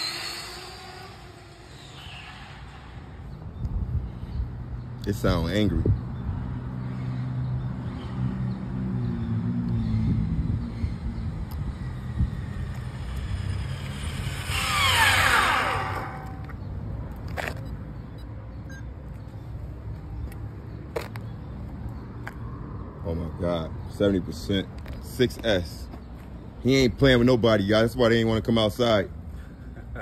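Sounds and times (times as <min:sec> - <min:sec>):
rc car motor whine passing: 0:00.0 - 0:03.4, 0:10.1 - 0:16.6.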